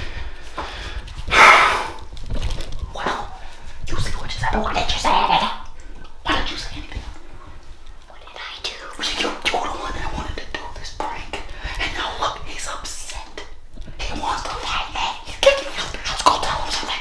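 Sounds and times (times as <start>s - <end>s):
man and girl whispering: 2.8s - 17.0s.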